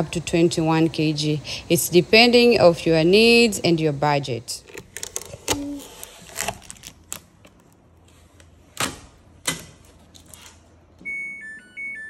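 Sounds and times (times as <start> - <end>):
washing machine power-on chime: 11.0 - 12.0.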